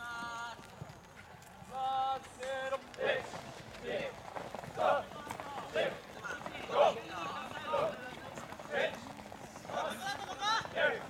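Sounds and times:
players shouting calls: 1.7 - 11.0.

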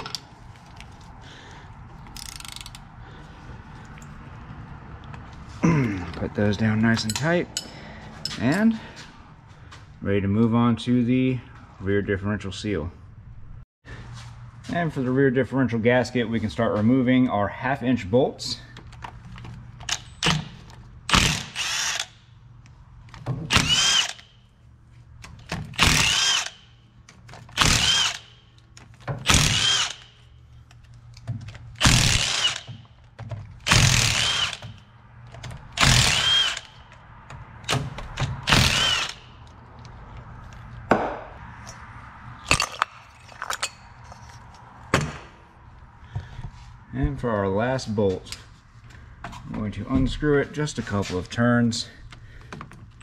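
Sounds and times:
impact wrench whining in bursts: 19.8 - 22.3, 23.4 - 24.5, 25.4 - 30.4, 31.7 - 32.9, 33.6 - 34.9, 35.7 - 36.9, 37.6 - 39.4.

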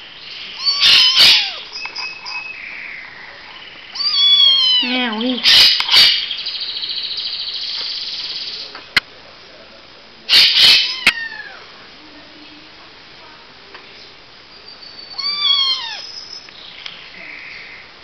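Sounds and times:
kitten meowing: 0.6 - 1.7, 4.0 - 6.1, 10.4 - 11.6, 15.1 - 16.2.

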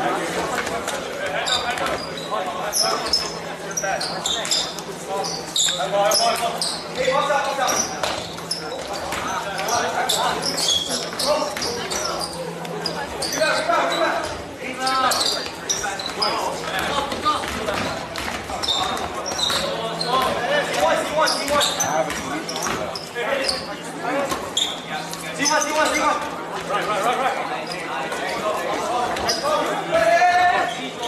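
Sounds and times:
sneaker squeaks: 0.6 - 26.9, 27.5 - 31.0.

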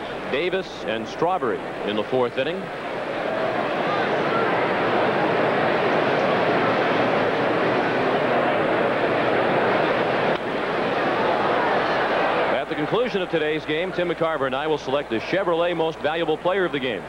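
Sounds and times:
stadium crowd din: 0.0 - 17.0.

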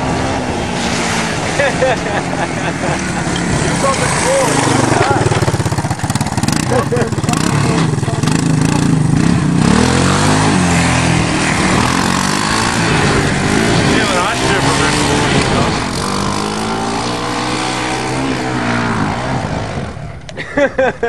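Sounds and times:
engine revving hard: 0.0 - 20.0.

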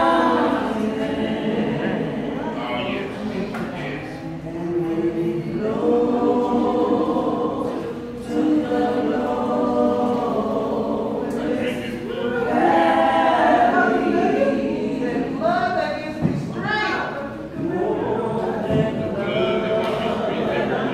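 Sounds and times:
voices singing a cappella: 0.0 - 20.9.

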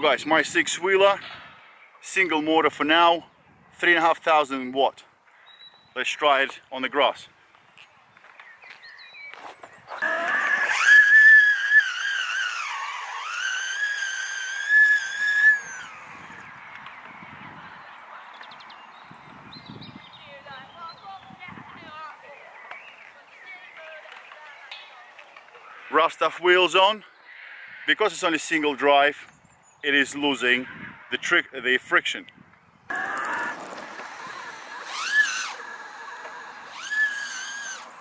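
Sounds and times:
quiet outdoor background: 0.0 - 38.0
electric motor whine: 9.9 - 16.9, 32.9 - 38.0.

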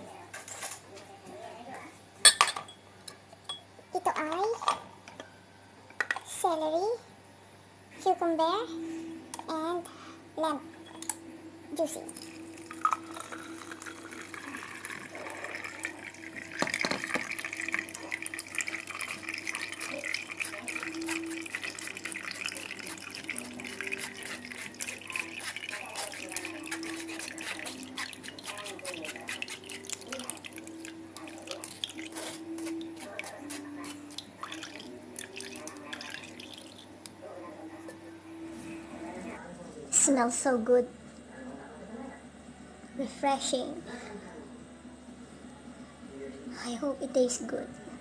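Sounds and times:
juice trickling through strainer: 12.0 - 36.9.

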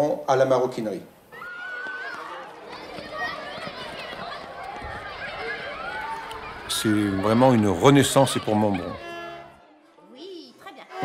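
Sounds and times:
children calling and chattering: 1.2 - 11.0
man speaking: 6.7 - 9.0.

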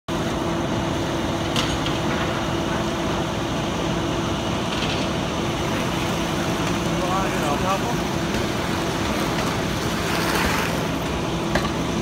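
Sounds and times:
diesel engine running: 0.1 - 12.0.

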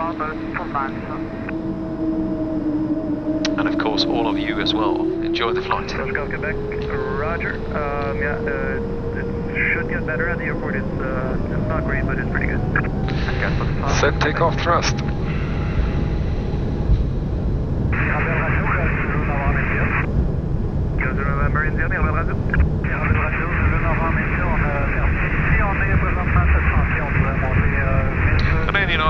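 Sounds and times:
radio voices: 0.0 - 1.5, 3.4 - 15.5, 18.0 - 20.1, 21.0 - 29.0
jet engines low rumble: 0.0 - 29.0.

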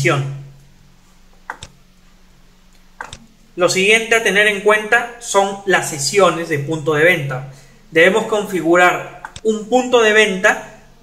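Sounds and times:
faint steady hum: 0.0 - 11.0
computer mouse clicks: 1.5 - 1.8, 3.0 - 3.3, 9.2 - 9.5.

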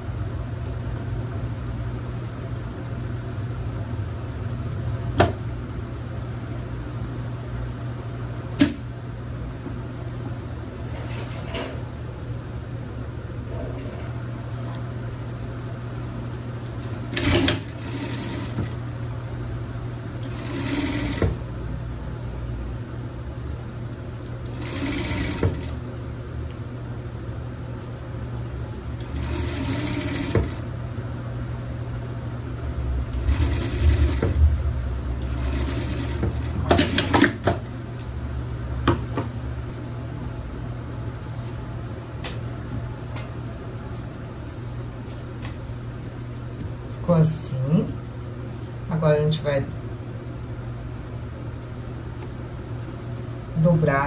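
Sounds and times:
steady low hum: 0.0 - 54.0
sewing machine stitching: 17.0 - 18.8, 20.2 - 21.4, 24.4 - 25.8, 29.0 - 30.6, 33.2 - 34.4, 35.2 - 37.7.

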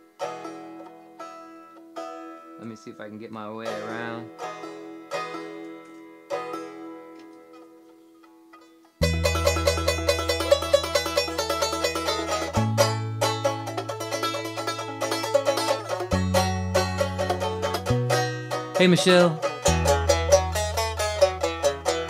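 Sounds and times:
banjo picking: 0.0 - 22.0
harmonica: 9.0 - 22.0
low bass line: 9.0 - 22.0.

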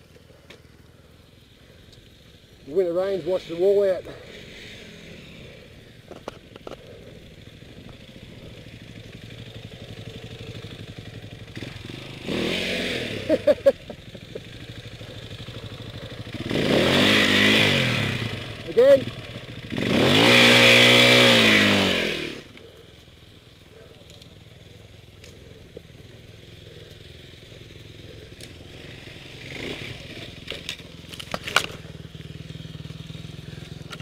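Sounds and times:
dirt bike engine revving: 1.2 - 34.0.

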